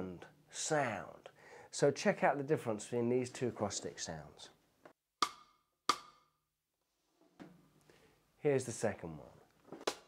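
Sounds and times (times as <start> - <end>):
cross-stick clicks on snare drum: 5.2 - 6.2.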